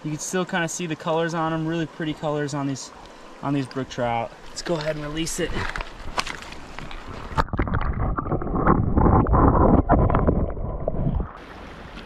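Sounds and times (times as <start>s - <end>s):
stream water sloshing: 0.1s - 12.0s.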